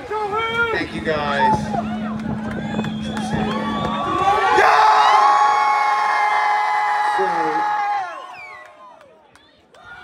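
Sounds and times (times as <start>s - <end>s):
concert crowd cheering and whooping: 1.1s - 10.0s.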